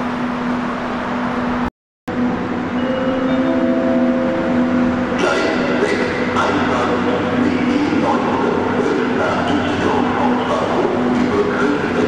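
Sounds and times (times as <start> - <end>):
electric train rumbling: 0.0 - 12.0
steady humming tones: 0.0 - 12.0.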